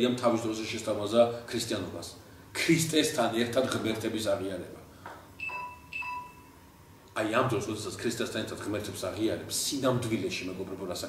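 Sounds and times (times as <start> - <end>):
electronic chime tones: 5.4 - 6.6.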